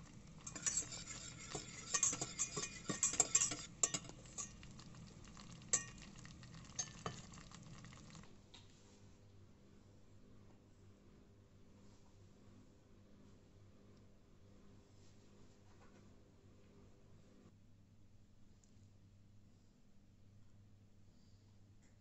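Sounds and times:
wire whisk clinking in a saucepan: 0.0 - 8.3.

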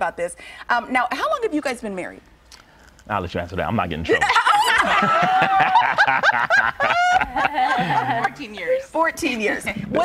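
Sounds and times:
people laughing: 4.2 - 8.8.

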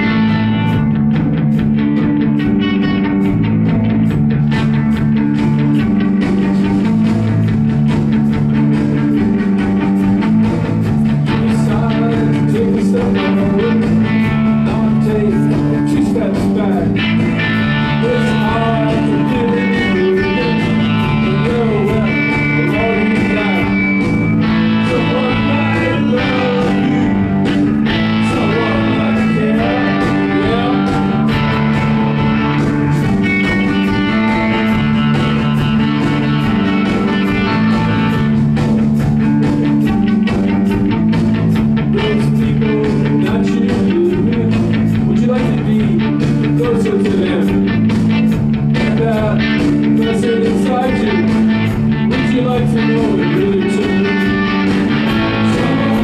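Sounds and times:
rock band playing: 0.0 - 56.0
man singing: 11.2 - 23.9, 24.7 - 32.2, 41.8 - 47.8, 48.7 - 56.0.

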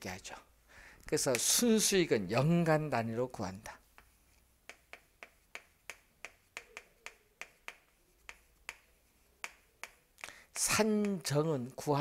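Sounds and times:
chalk tapping on blackboard: 3.8 - 11.5.

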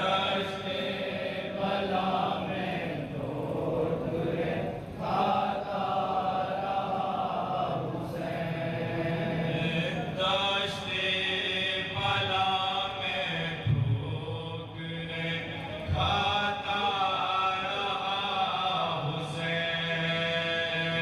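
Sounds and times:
men chanting a mourning lament: 0.0 - 21.0.

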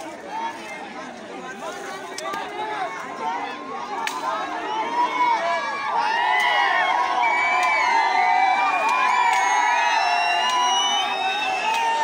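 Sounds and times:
crowd shouting and cheering: 0.0 - 12.0.

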